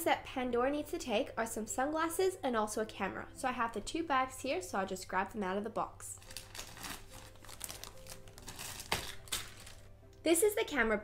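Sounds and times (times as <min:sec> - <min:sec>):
plastic bags crinkling: 0:06.2 - 0:09.9.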